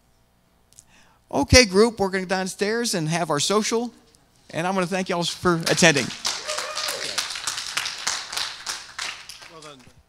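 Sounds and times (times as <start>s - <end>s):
audience clapping: 5.1s - 10.0s.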